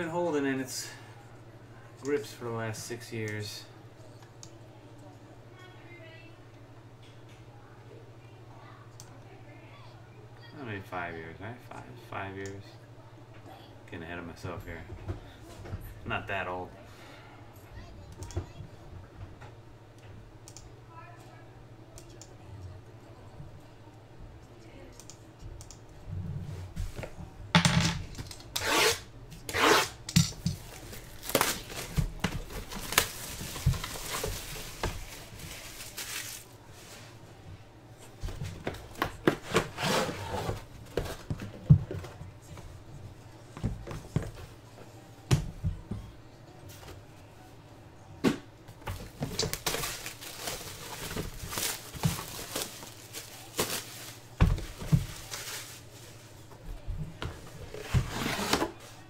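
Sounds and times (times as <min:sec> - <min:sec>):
plastic wrap tearing and crackling: 0:30.6 - 0:36.5, 0:49.4 - 0:54.2.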